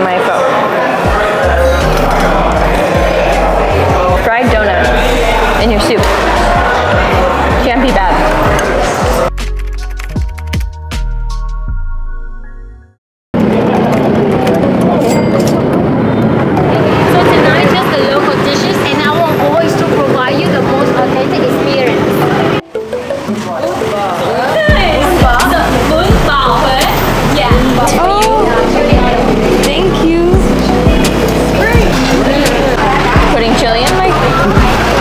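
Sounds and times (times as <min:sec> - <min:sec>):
people's voices: 0:00.0 - 0:09.4, 0:13.4 - 0:35.0
melodic background music: 0:00.0 - 0:13.0, 0:14.6 - 0:35.0
low beat: 0:01.0 - 0:11.9, 0:21.8 - 0:35.0
motorbikes and scooters passing: 0:13.4 - 0:22.6, 0:23.4 - 0:35.0.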